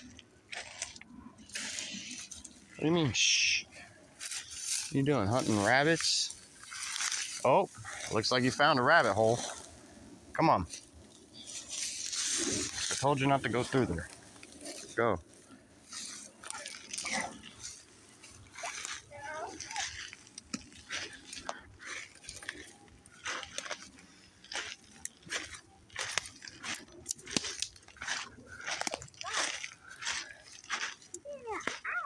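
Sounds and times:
footsteps on dry grass: 0.0s - 9.8s, 10.6s - 32.0s.

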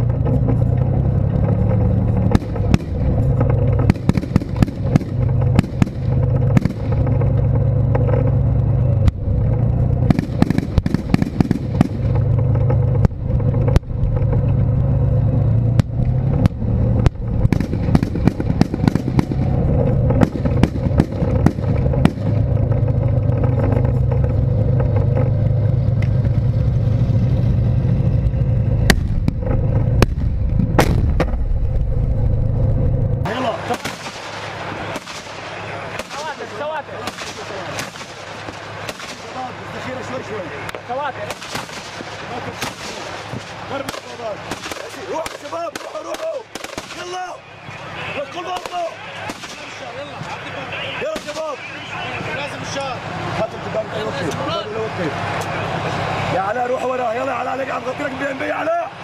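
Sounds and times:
tank engine droning: 0.0s - 59.0s
gunfire cracks: 3.8s - 7.0s, 10.1s - 12.2s, 16.4s - 19.5s, 30.0s - 31.4s, 33.7s - 39.4s, 41.2s - 47.2s, 48.6s - 49.9s, 51.1s - 51.5s
voices calling out: 33.2s - 59.0s.

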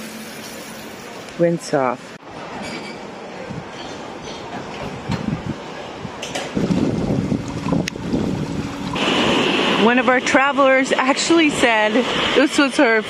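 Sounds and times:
wind on microphone: 3.4s - 3.8s, 4.6s - 13.0s
small waves breaking on sand: 8.9s - 13.0s.

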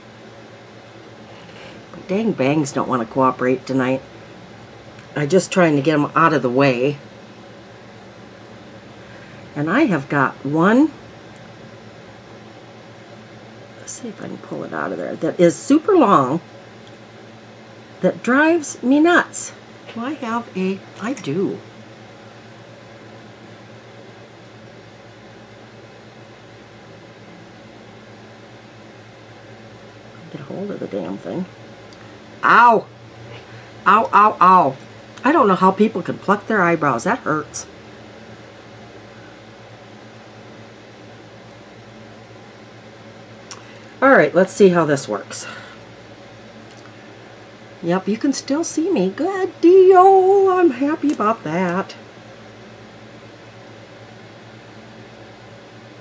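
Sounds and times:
fan running with hiss and hum: 0.0s - 56.0s.

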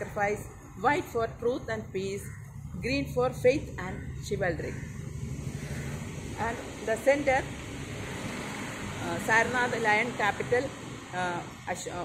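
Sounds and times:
woman speaking: 0.0s - 4.9s, 6.4s - 7.5s, 9.0s - 12.0s
low outdoor rumble: 0.0s - 12.0s.

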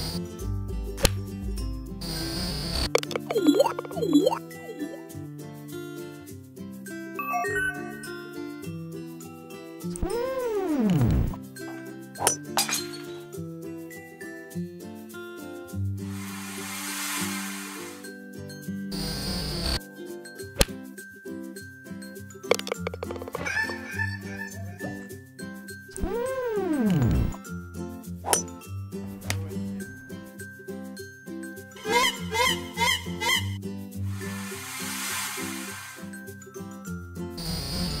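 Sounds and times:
light background music: 0.0s - 38.0s
bouncy cartoon music: 2.8s - 5.2s, 7.2s - 9.0s, 22.5s - 27.4s, 28.2s - 30.4s, 31.6s - 33.6s
falling whistle glide: 7.2s - 8.6s, 16.1s - 18.2s, 34.2s - 36.4s
bright clinks: 12.2s - 13.3s, 22.2s - 23.4s.

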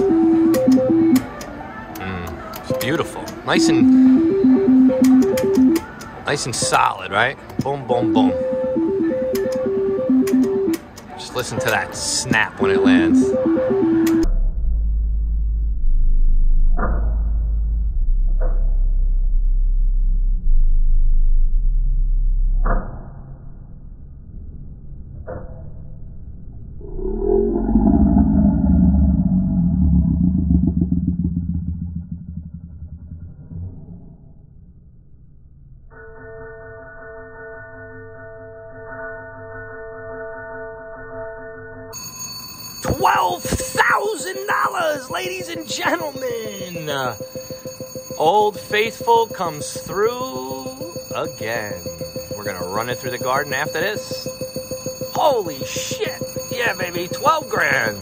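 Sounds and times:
jackpot alert ringing tone: 2.7s - 5.8s, 6.4s - 14.3s, 42.0s - 58.0s
wavering electronic sound: 11.4s - 23.4s, 26.7s - 34.1s, 42.7s - 58.0s
slot machine reels spinning: 42.0s - 58.0s.

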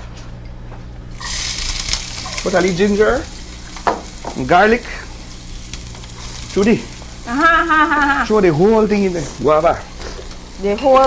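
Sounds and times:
onions sizzling in hot oil: 1.1s - 11.0s.

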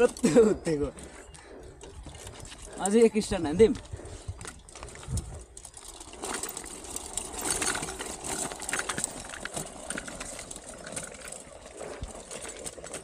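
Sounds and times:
bicycle rolling over stone paving: 0.0s - 13.0s.

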